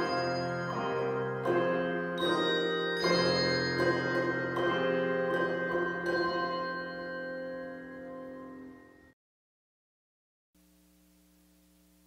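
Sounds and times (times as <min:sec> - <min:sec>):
handbells ringing a chord: 0:00.0 - 0:09.1.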